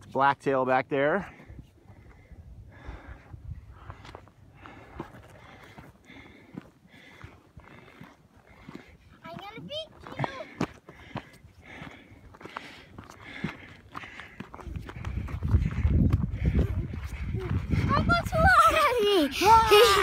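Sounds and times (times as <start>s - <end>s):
wind rumble on microphone: 1.5s - 4.9s, 14.6s - 18.8s
high-pitched voice: 17.9s - 20.0s.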